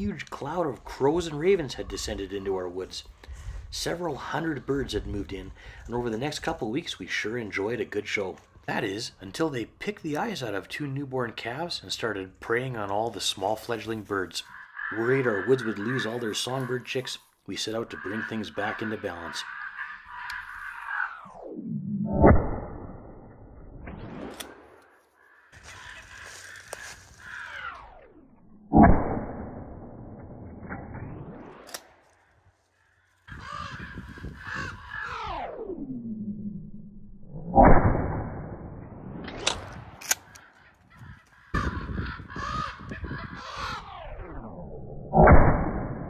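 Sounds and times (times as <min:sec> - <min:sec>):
crows calling: 0:13.9 - 0:21.3, 0:25.0 - 0:28.5, 0:32.0 - 0:35.4, 0:40.2 - 0:44.2
sharp clicks: 0:31.6 - 0:32.2, 0:39.3 - 0:40.9.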